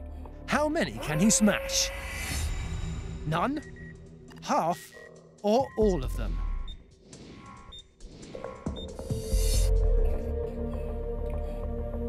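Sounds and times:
suspense music: 0.0s - 12.0s.

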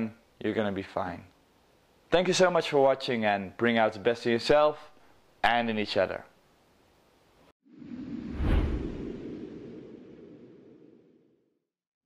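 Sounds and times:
rushing whoosh with deep low end: 7.7s - 11.3s.

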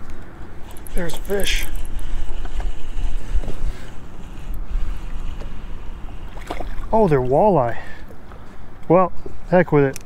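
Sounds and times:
wind buffeting microphone: 0.8s - 8.0s.

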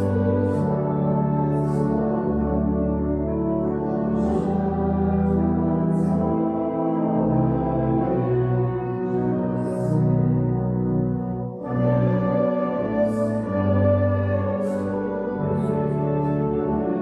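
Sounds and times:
church organ chords: 0.0s - 17.0s.

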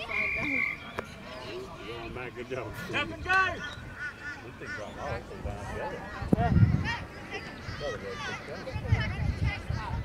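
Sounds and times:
whistle blast: 0.0s - 0.9s.

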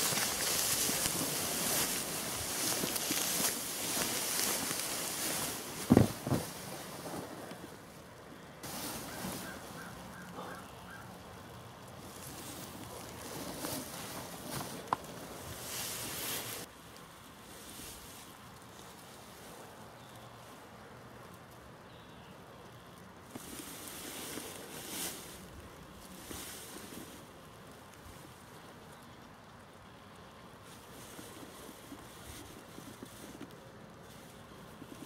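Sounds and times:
rustling: 0.0s - 21.7s, 22.8s - 35.0s.

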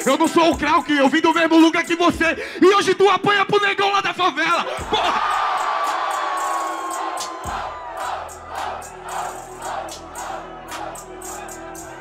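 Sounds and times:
hip-hop beat: 0.0s - 3.5s, 4.2s - 12.0s
crowd cheering: 4.8s - 12.0s
crowd shouting in rhythm: 4.8s - 12.0s.

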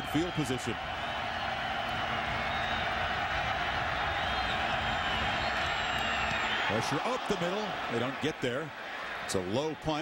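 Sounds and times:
stadium crowd noise: 0.0s - 10.0s
whistles and whoops: 0.2s - 7.0s.

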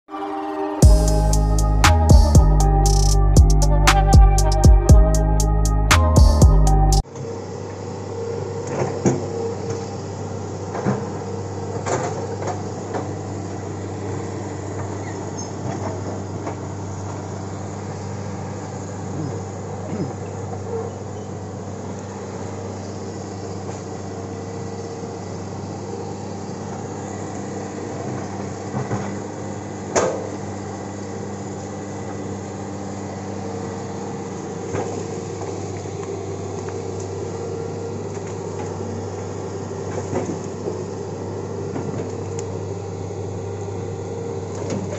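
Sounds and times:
excavator diesel engine running: 0.1s - 7.0s.

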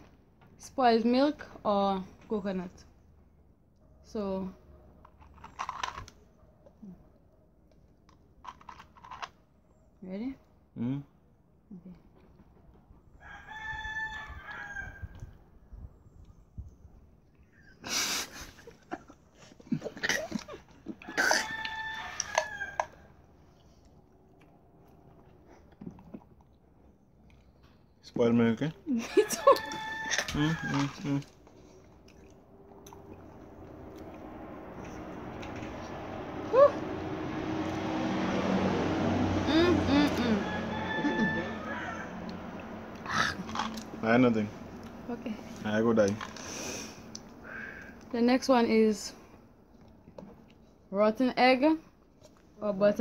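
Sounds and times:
background noise: 0.0s - 53.0s
rooster crowing: 13.2s - 15.2s, 21.0s - 23.1s, 29.1s - 31.1s, 40.2s - 42.6s
person humming while tasting: 39.4s - 40.5s.

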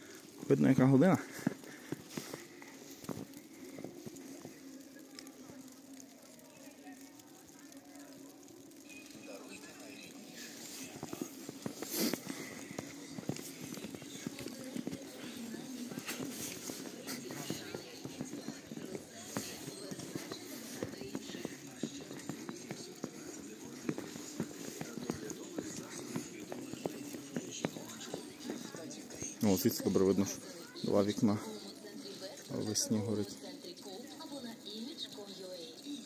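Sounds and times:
footsteps crunching through snow: 0.0s - 5.6s, 9.0s - 31.8s
faint voices of people talking: 0.0s - 36.0s.

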